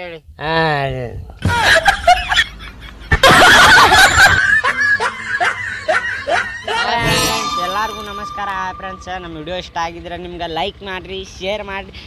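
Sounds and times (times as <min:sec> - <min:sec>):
people laughing: 0:01.4 - 0:07.2.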